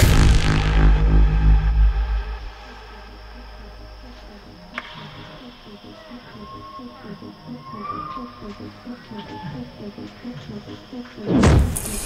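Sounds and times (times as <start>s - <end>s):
heavy sub-bass: 0.0s - 4.7s
quiet sustained synth pad: 0.0s - 12.0s.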